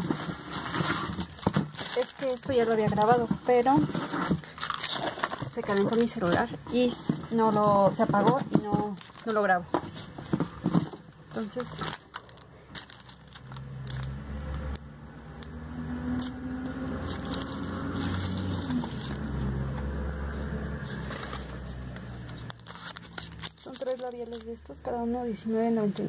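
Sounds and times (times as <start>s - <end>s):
plastic crinkles and clicks: 0.0s - 6.6s, 8.3s - 9.6s, 10.3s - 15.6s, 16.2s - 19.2s, 21.2s - 26.0s
passing vehicle engine rumble: 12.8s - 22.7s.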